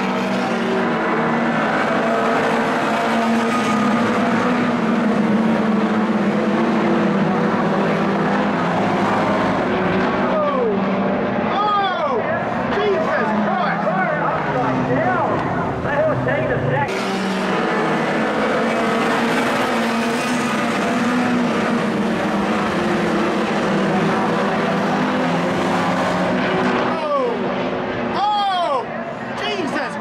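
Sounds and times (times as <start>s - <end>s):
race car engines: 0.0s - 30.0s.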